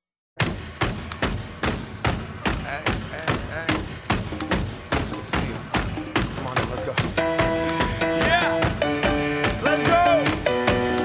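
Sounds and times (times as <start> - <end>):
punchy hip-hop drum beat: 0.8 - 11.0.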